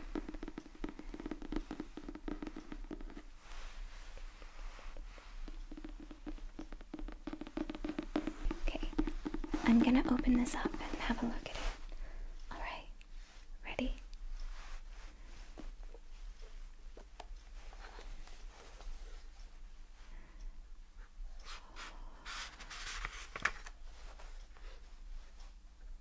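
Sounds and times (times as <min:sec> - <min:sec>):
light taps on a book: 0:00.1 - 0:11.7
person whispering: 0:08.5 - 0:11.7, 0:12.5 - 0:13.0, 0:13.6 - 0:14.0.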